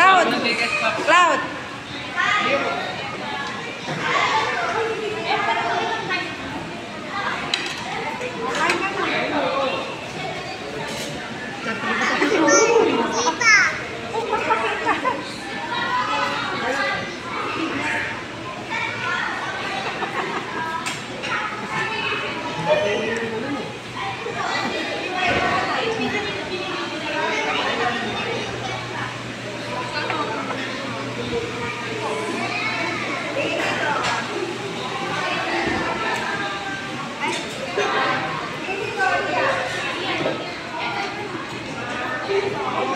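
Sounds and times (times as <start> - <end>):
children talking and playing: 0.0 - 42.9
dining room chatter: 0.0 - 42.9.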